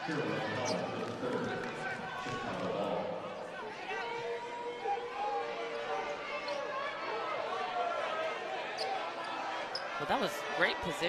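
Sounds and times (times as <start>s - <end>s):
voices in arena: 0.0s - 11.0s.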